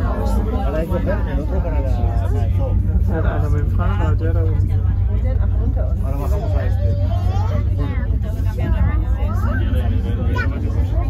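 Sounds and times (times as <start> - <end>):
cable car running rumble: 0.0 - 11.0
passengers chatting: 0.0 - 11.0.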